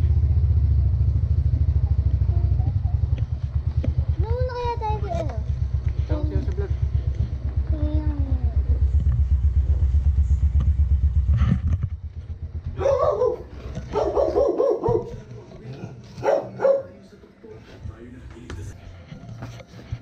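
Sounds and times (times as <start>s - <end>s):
motor scooter engine idling: 0.0s - 15.1s
dog barking: 12.8s - 15.5s, 16.2s - 17.0s.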